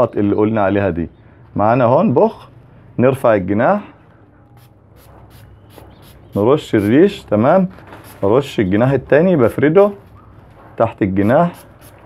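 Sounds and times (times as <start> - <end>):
spray bottle spritzes: 4.6 - 7.0, 8.0 - 8.2, 11.2 - 12.0.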